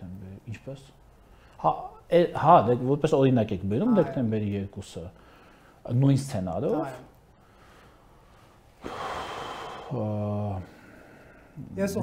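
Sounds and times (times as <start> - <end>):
man speaking: 1.6 - 5.2, 5.8 - 7.1, 9.9 - 10.7, 11.6 - 12.0
man breathing in through mouth: 8.8 - 10.0.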